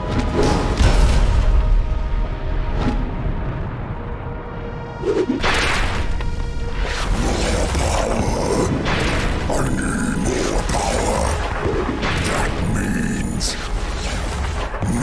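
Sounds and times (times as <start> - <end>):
dramatic background music: 0.0 - 15.0.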